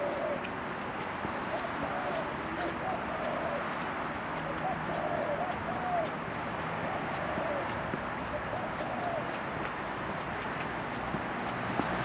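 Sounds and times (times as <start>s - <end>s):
bird calling: 0.0s - 0.5s, 1.5s - 3.7s, 4.5s - 6.1s, 6.8s - 9.3s
steady outdoor hiss: 0.0s - 12.0s.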